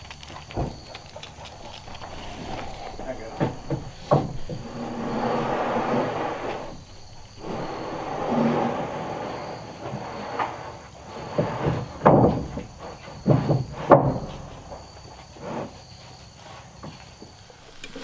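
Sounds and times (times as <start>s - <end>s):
wooden planks scraping on joists: 1.4s - 18.0s.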